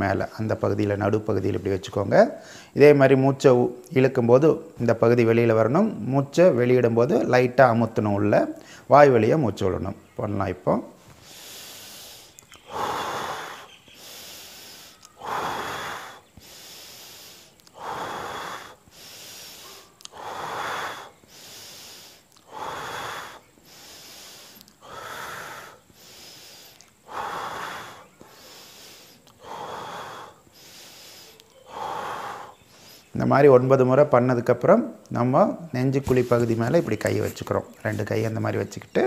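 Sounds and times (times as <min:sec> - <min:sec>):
man breathing rhythmically: 0:02.3 - 0:02.8, 0:08.6 - 0:08.9, 0:10.9 - 0:33.3.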